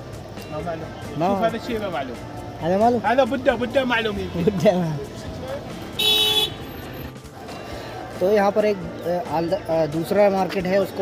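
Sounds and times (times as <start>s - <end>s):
outdoor background noise: 0.0s - 11.0s
car horn toot: 6.0s - 6.8s.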